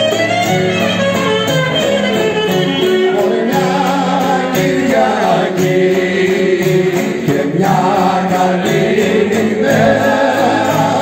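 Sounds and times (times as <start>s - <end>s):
strummed lute: 0.0s - 11.0s
men singing folk song: 3.1s - 11.0s.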